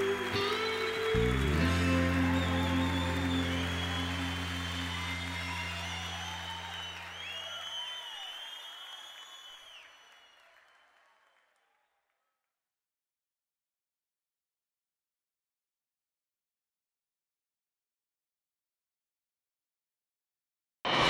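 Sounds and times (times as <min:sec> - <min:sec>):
band's held chord: 0:00.0 - 0:07.3
audience applause and cheering: 0:00.0 - 0:11.6.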